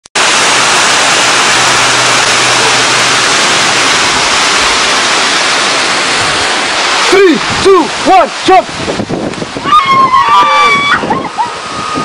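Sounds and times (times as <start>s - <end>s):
waterfall rushing: 0.1s - 12.0s.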